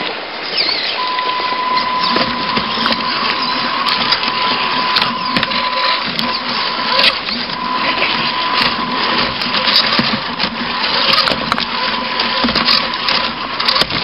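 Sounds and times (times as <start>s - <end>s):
electric motor whining: 1.0s - 14.0s
tyres clicking on rocks: 1.9s - 14.0s.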